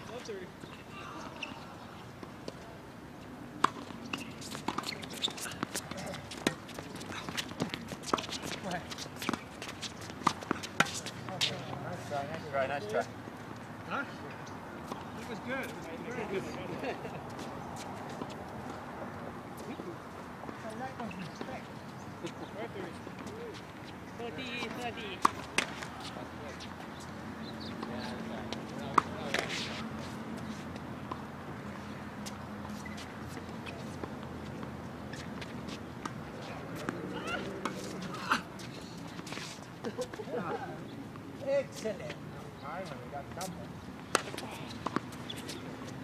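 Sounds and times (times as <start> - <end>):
tennis balls struck by rackets: 3.5 - 12.4, 24.6 - 26.2, 27.6 - 30.0, 43.4 - 46.0
balls bouncing on hard court: 3.6 - 11.9.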